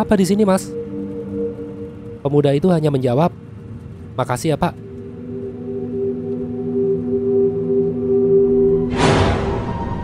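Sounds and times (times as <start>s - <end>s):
low drone music: 0.0s - 10.0s.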